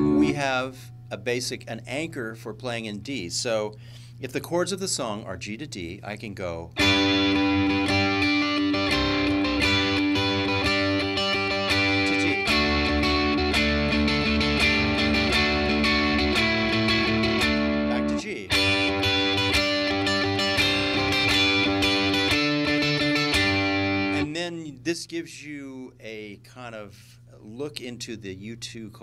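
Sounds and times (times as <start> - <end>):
electric guitar notes ringing: 0.0 - 1.2, 6.8 - 24.3.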